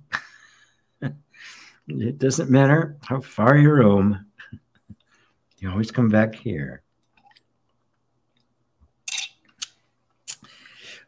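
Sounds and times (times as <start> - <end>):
mouth clicks: 9.1 - 10.5.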